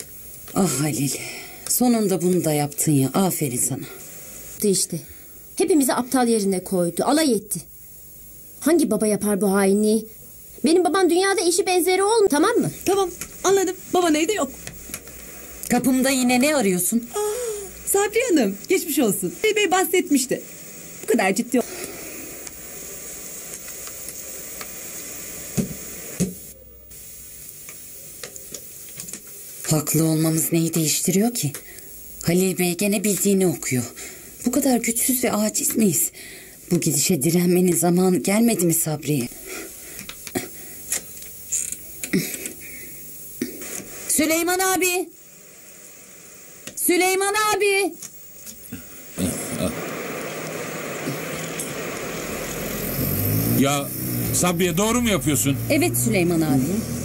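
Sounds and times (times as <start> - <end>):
background hiss: 0.0 - 57.0
car engine running: 51.1 - 57.0
street traffic noise: 52.3 - 57.0.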